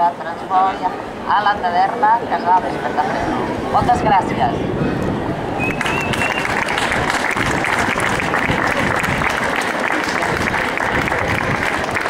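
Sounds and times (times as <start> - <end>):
crowd applauding: 5.6 - 12.0.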